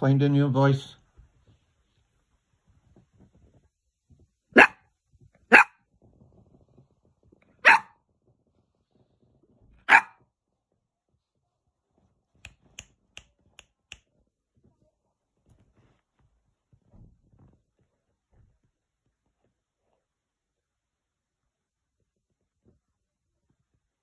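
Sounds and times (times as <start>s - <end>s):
puppy barking: 4.6s - 4.8s, 5.5s - 5.8s, 7.6s - 8.0s, 9.8s - 10.2s.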